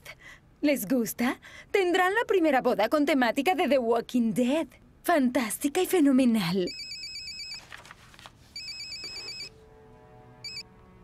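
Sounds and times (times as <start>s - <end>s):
mobile phone ringing: 6.7s - 7.6s, 8.6s - 9.5s, 10.4s - 10.6s.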